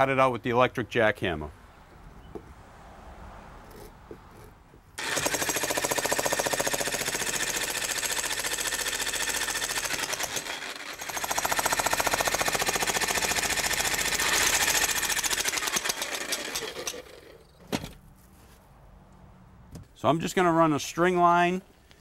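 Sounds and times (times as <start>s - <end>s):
jackhammer breaking asphalt: 5.0s - 17.4s.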